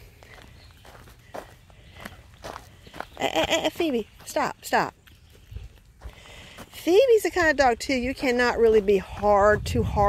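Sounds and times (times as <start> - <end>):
footsteps on wood-chip mulch: 0.0 - 10.0.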